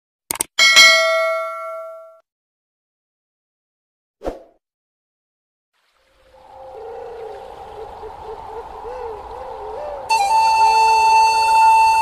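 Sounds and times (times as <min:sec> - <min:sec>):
background music: 0:09.0 - 0:12.0.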